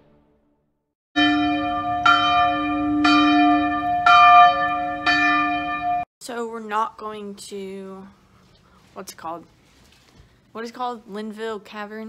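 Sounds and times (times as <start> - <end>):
bell ringing: 1.2 - 6.1.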